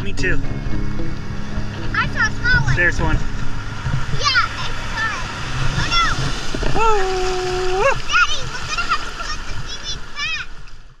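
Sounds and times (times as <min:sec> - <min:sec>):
water splashing on rocks: 0:03.3 - 0:10.9.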